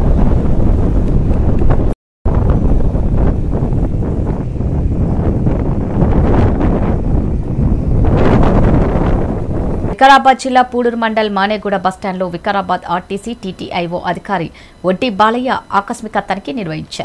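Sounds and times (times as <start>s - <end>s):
wind buffeting microphone: 0.0s - 15.1s.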